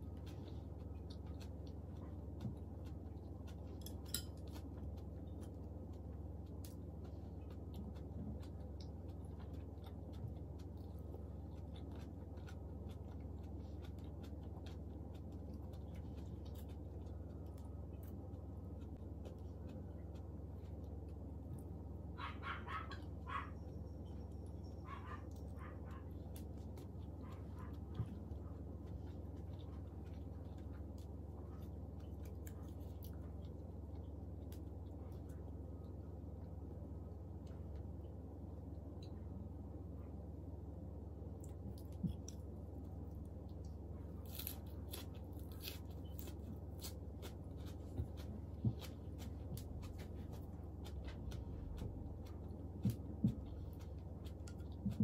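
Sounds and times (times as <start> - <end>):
lettuce crunching while chewed: 0.0 - 23.5, 24.4 - 36.0, 41.4 - 55.0
low hum: 0.0 - 55.0
dog barking: 22.2 - 23.7, 24.8 - 26.2, 27.2 - 28.0.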